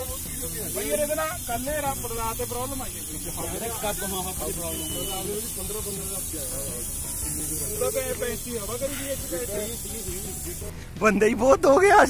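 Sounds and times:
air hissing from tyre valve: 0.0s - 11.0s.

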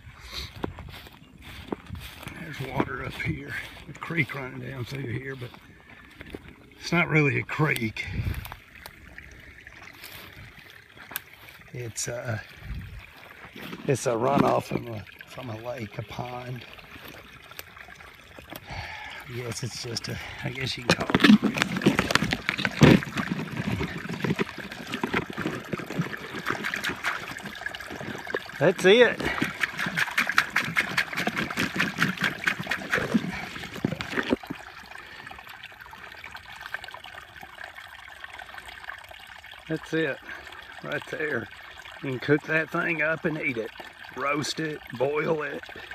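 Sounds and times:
stream trickling: 0.0s - 45.9s
weeds rustling underfoot: 0.3s - 6.4s.

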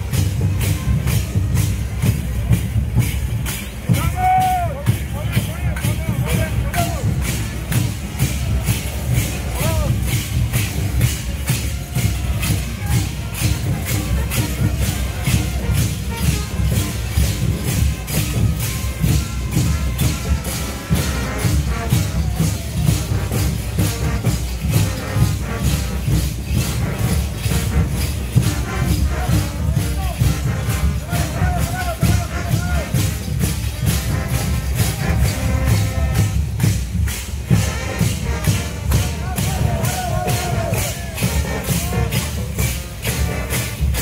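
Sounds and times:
jingling rattling beat: 0.0s - 44.0s
parade band music: 0.0s - 44.0s.

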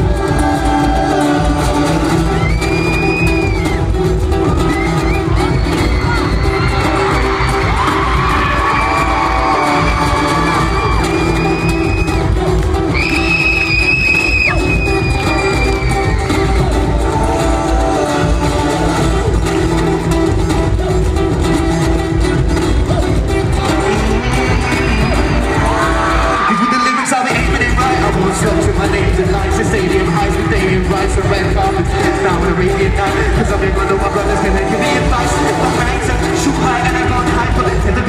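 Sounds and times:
crowd cheering: 0.0s - 19.6s, 23.0s - 38.0s
acoustic guitar live music: 0.0s - 38.0s
high-pitched screams: 4.5s - 12.3s, 12.9s - 18.1s, 24.1s - 27.3s.

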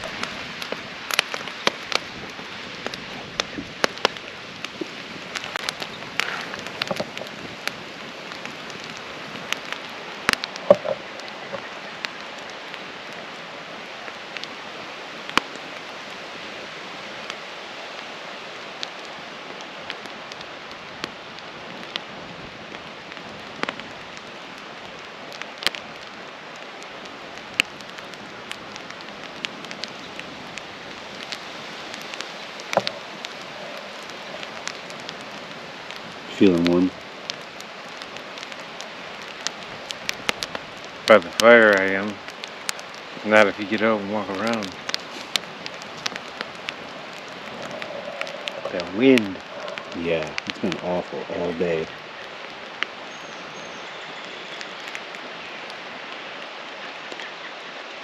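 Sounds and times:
campfire crackling and popping: 0.0s - 58.0s
steady hiss: 0.0s - 58.0s.

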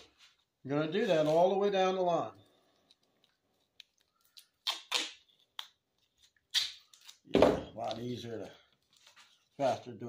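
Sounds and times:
raspy ripping: 3.8s - 5.8s.

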